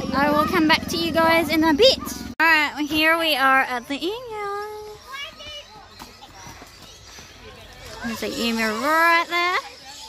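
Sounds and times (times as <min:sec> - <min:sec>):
children calling: 0:00.0 - 0:10.0
faint children chatter: 0:04.6 - 0:10.0.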